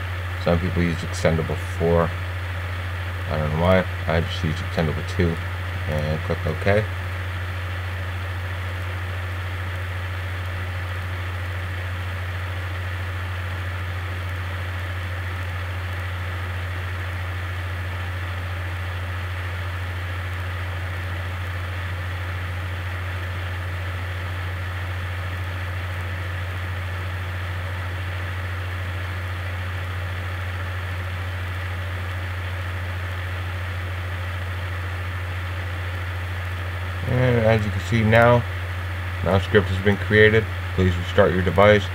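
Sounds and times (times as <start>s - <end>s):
steady low hum: 0.0s - 41.9s.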